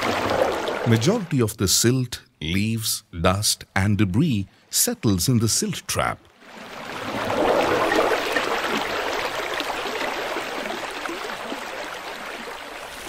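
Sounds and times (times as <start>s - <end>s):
water pouring: 0.0s - 1.4s, 6.4s - 13.0s.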